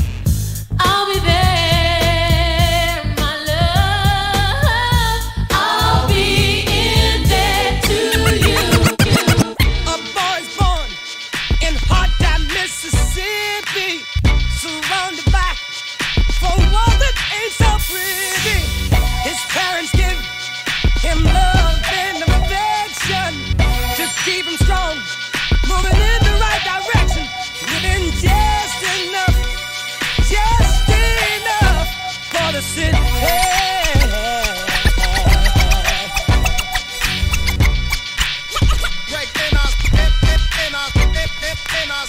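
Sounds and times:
dj mix playing: 7.0 - 11.0, 25.6 - 29.6, 30.2 - 42.0
record scratching: 7.3 - 9.7, 33.0 - 42.0
person singing over a beat: 7.3 - 11.0, 21.0 - 23.2, 30.2 - 37.0, 38.6 - 42.0
rapping over a beat: 7.8 - 15.7, 16.3 - 23.4, 24.0 - 37.2, 38.6 - 42.0.

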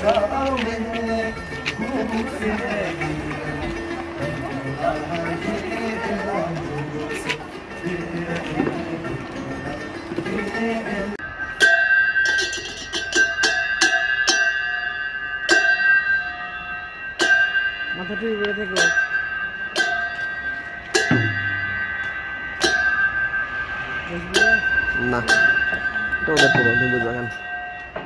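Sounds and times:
hand cymbals clashing: 0.0 - 28.0.

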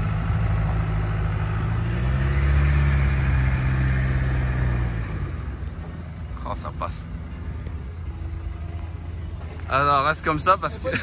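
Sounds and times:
car engine running at low revs: 0.0 - 11.0.

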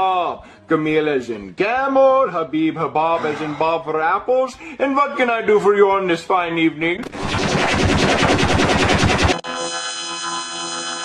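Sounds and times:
rapid sharp bangs: 7.0 - 9.4.

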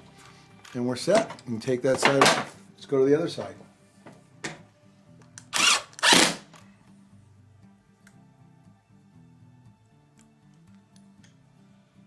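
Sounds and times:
faint background music: 0.0 - 12.0
cordless drill driving screws: 5.4 - 6.5.

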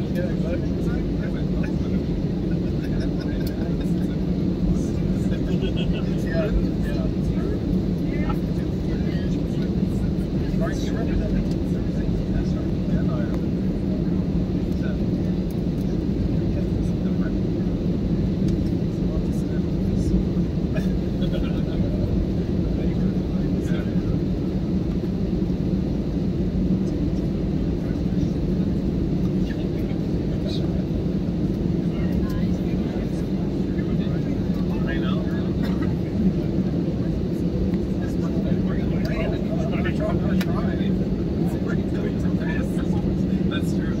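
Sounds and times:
idling jet engines hum: 0.0 - 44.0
jet airliner cabin rumble: 0.0 - 44.0.

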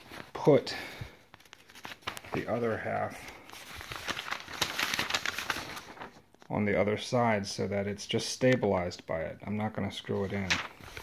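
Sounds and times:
paper pages rustling: 0.0 - 0.6, 1.2 - 6.7, 10.0 - 11.0.

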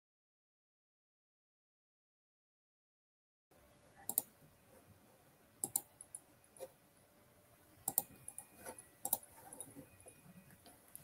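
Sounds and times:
quiet room noise: 3.5 - 11.0
computer mouse clicking: 4.1 - 4.3, 5.6 - 6.8, 7.8 - 11.0.

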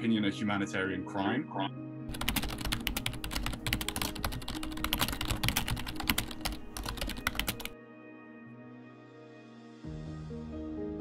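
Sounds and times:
background music: 0.0 - 11.0
keyboard typing clicks: 2.1 - 7.7.

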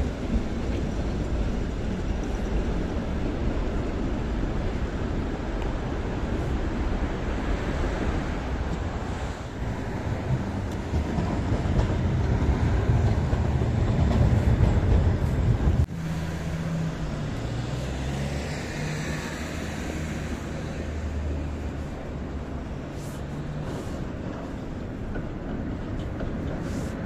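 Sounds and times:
tram motors whining: 0.0 - 26.6
tram passing with low rumble: 0.0 - 27.0.

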